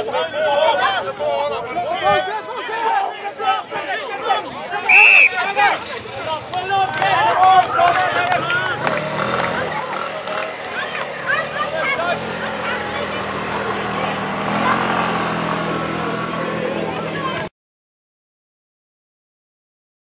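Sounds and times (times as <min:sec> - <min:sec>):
players shouting on field: 0:00.0 - 0:17.5.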